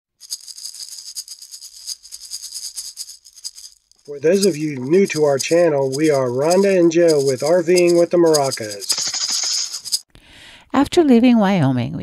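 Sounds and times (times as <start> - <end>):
maracas rattling: 0.2 - 10.0.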